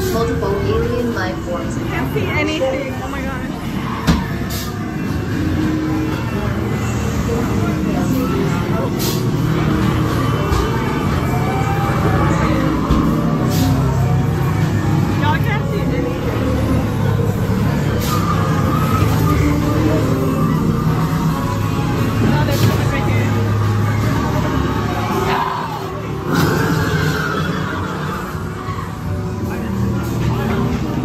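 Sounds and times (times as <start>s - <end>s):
low rumbling drone: 4.7s - 31.0s.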